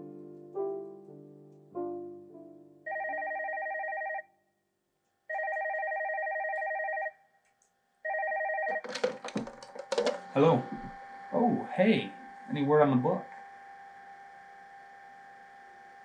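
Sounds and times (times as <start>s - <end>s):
desk telephone ringing: 2.9s - 4.4s, 5.3s - 7.2s, 8.0s - 12.5s.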